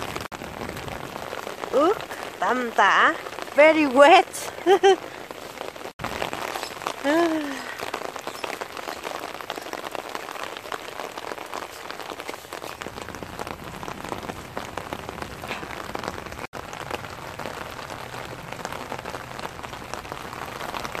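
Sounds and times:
heavy rain on wet paving: 0.0 - 21.0
raindrops hitting water in tubs: 0.0 - 21.0.

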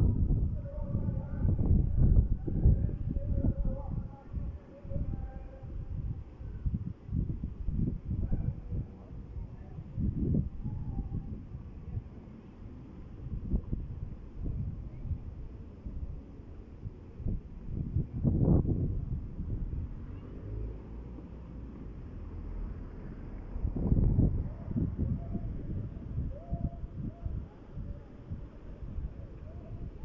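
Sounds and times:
wind rumbling on microphone: 0.0 - 30.0
car traffic passing: 19.4 - 24.3.

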